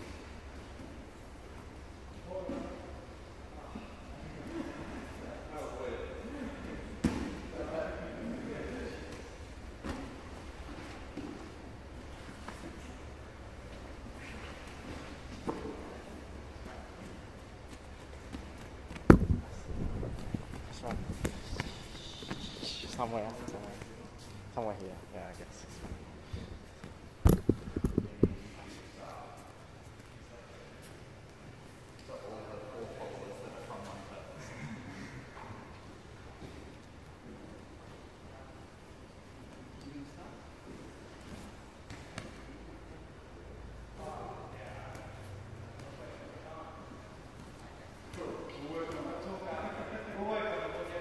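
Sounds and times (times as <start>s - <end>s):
low room hum: 0.0s - 51.0s
thumps on a grappling mat: 18.3s - 21.6s, 27.2s - 28.4s.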